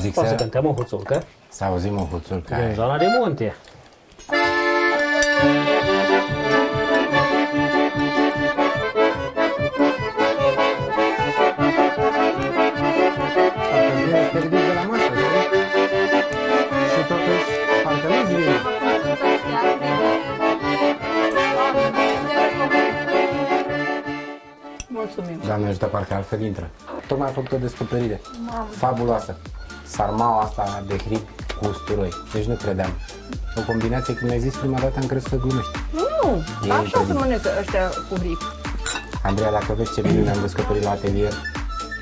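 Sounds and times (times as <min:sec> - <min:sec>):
accordion playing folk dance tune: 0:02.8 - 0:03.4, 0:04.3 - 0:25.2, 0:33.3 - 0:38.8, 0:39.5 - 0:42.0.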